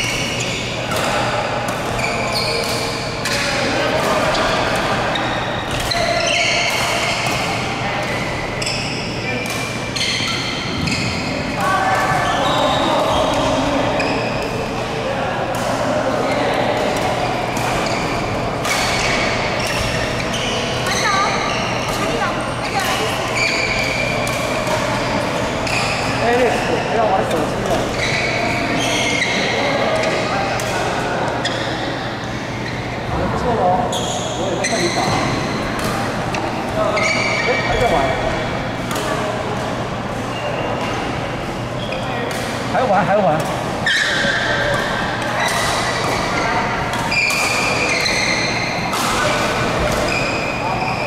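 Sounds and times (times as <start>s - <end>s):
voices echoing in hall: 0.0s - 51.0s
shoes squeaking on sports floor: 1.8s - 3.6s, 4.2s - 14.5s, 17.2s - 30.6s, 33.8s - 38.8s, 40.3s - 43.2s, 43.8s - 51.0s.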